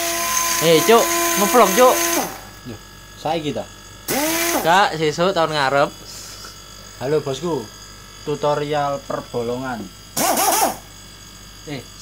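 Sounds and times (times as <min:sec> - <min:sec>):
faint high hum: 0:00.2 - 0:12.0.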